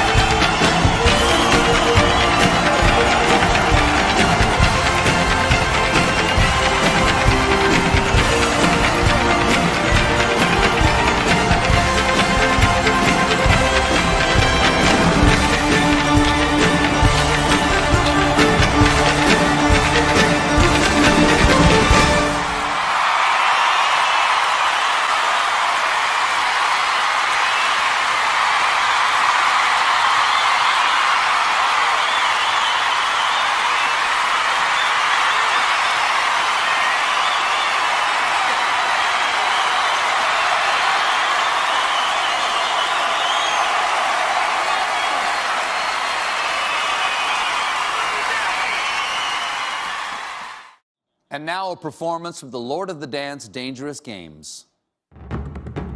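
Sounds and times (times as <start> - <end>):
audience applauding and cheering: 0.0 - 50.8.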